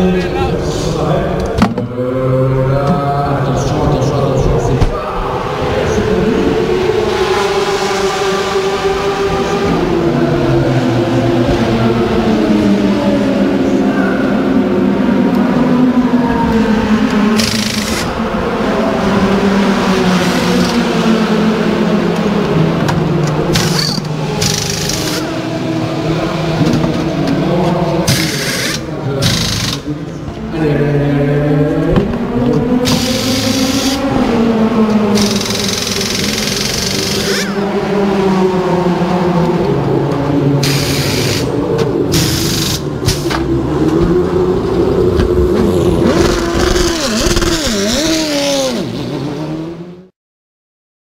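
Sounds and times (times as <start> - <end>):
race car engines running: 0.0 - 50.1
pneumatic wheel guns hissing: 17.4 - 18.1, 23.6 - 25.2, 28.1 - 29.8, 32.9 - 34.0, 40.6 - 43.3.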